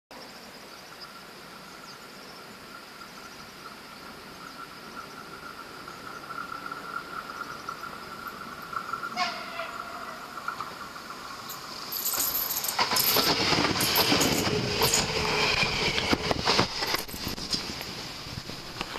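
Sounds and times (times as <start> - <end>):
train passing: 3.8 - 18.9.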